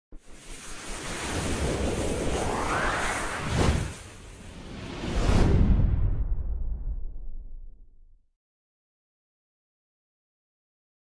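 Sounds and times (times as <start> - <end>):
whoosh sound effect: 0.3 - 6.3.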